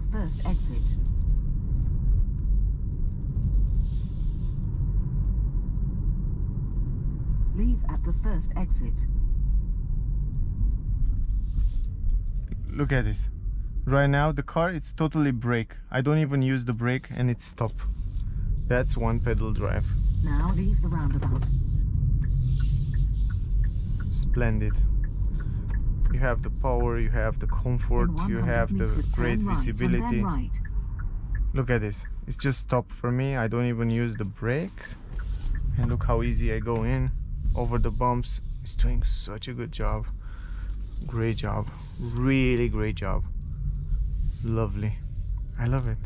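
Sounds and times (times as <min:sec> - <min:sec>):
road and tyre rumble in car: 0:00.0 - 0:46.0
faint regular ticking: 0:22.0 - 0:27.7, 0:30.1 - 0:37.4.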